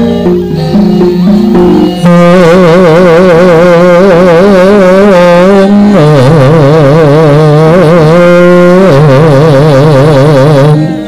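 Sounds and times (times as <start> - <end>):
melodic line with wavering vibrato: 0.0 - 11.0.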